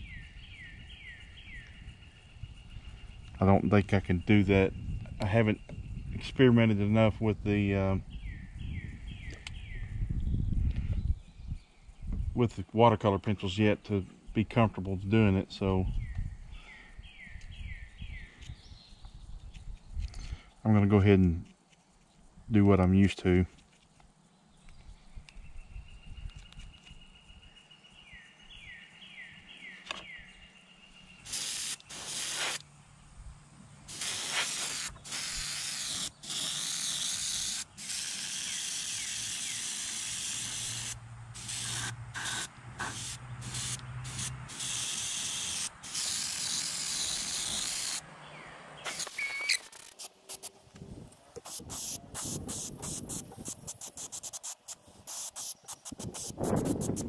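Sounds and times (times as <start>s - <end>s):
airbrush spraying hiss: 31.3s - 32.6s, 33.9s - 48.0s, 48.9s - 50.6s, 51.4s - 57.0s.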